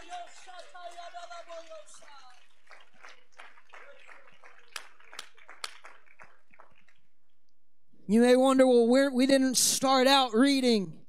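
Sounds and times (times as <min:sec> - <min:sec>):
congregation clapping: 0:00.0 - 0:07.4.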